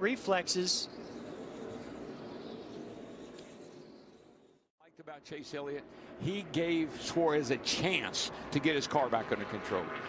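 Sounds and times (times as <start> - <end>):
race car engines droning: 5.0 - 10.0.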